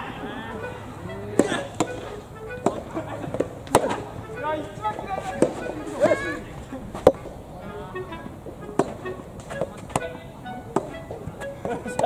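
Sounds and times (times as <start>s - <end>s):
racket hitting rubber ball: 1.1s - 7.4s, 8.0s - 12.0s.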